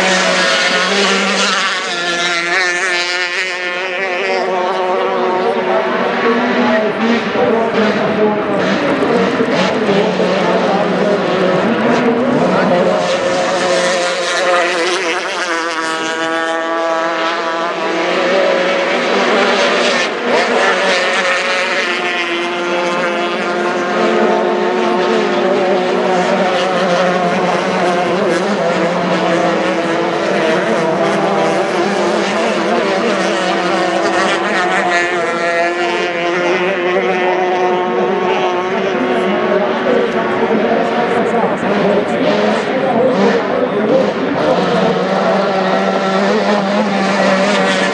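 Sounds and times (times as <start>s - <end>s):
powerboat engines at high revs: 0.0s - 47.9s.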